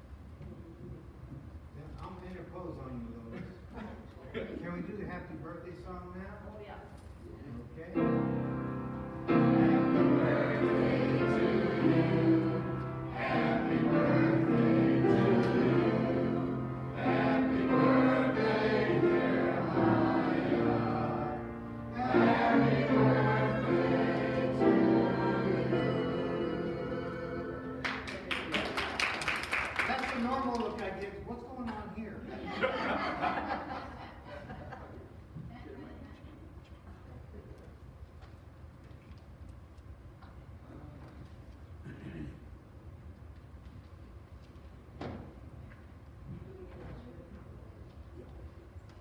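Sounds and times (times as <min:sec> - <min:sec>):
low room rumble: 0:00.0 - 0:49.0
organ chords: 0:08.0 - 0:28.1
congregation singing: 0:08.2 - 0:28.6.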